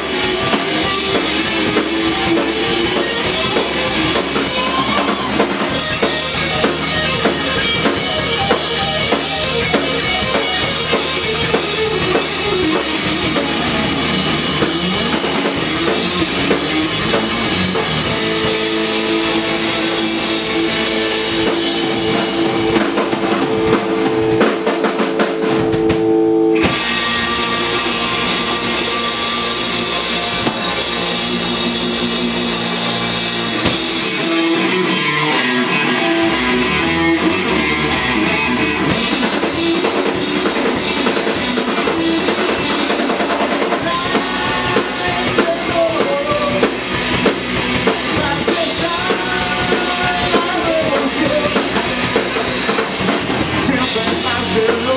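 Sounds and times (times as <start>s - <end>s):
bass guitar: 0.0s - 54.9s
drum kit: 0.0s - 54.9s
electric guitar: 0.0s - 54.9s.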